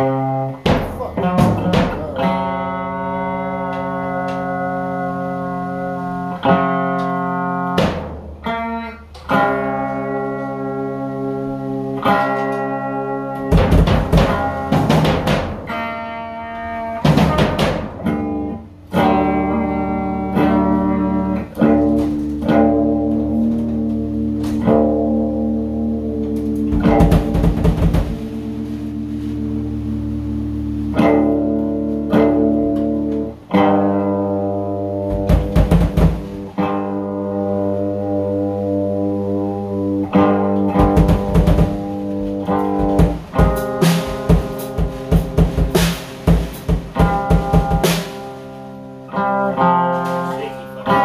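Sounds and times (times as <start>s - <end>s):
electric guitar chords: 0.0s - 51.0s
rapid sharp guitar hits: 0.0s - 51.0s.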